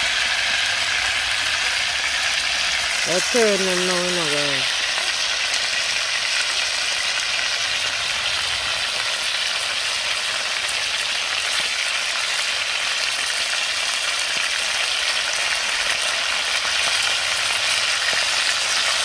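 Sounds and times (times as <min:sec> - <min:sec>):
fish sizzling in hot oil: 0:00.0 - 0:19.0.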